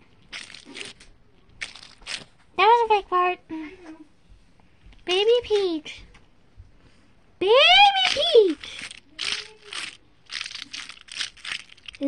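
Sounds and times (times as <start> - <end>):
stress ball squished: 0.0 - 2.5, 8.0 - 12.0.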